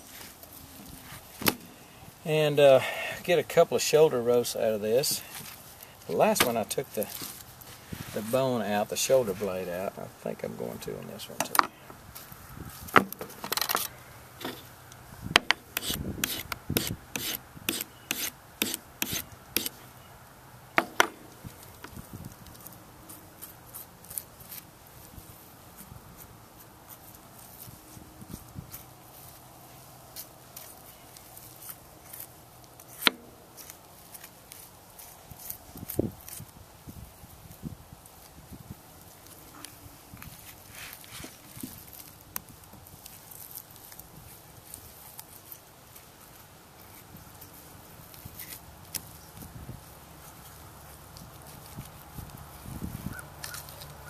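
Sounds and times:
knife scraping along bone: 15.7 - 19.8.

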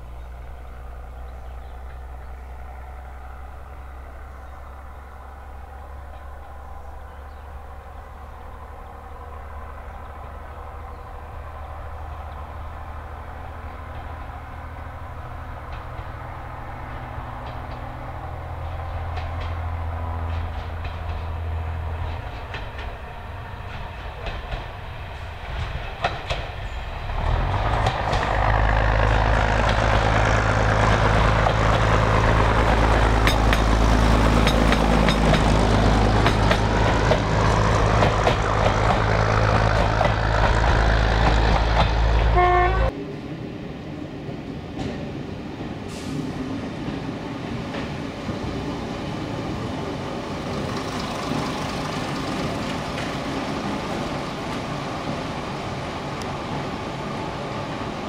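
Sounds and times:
diesel engines droning: 0.0 - 44.5, 45.6 - 58.0
wheels clicking over rail joints: 15.5 - 42.4.

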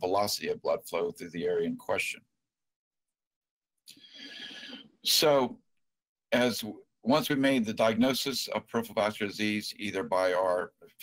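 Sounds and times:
man breathing in: 3.9 - 5.0.

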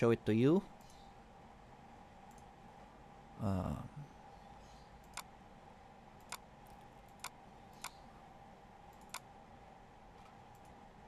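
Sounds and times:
faint steady hum: 0.0 - 11.0
computer mouse clicks: 2.2 - 2.5, 5.0 - 5.3, 6.2 - 8.0, 8.9 - 9.3, 10.2 - 10.8.

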